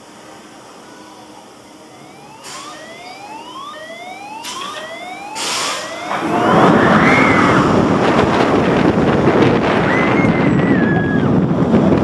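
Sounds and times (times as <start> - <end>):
rising mechanical whines: 1.6 - 11.5
air hissing bursts: 5.4 - 5.9.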